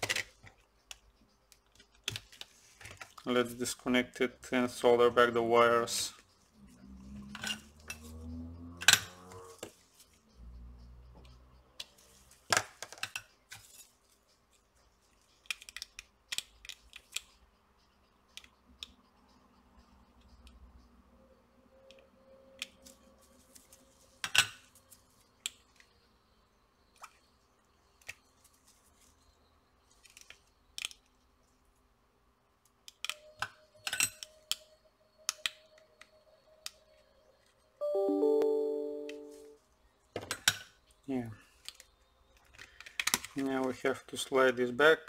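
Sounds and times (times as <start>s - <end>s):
short electronic chime: 37.8s - 39.6s.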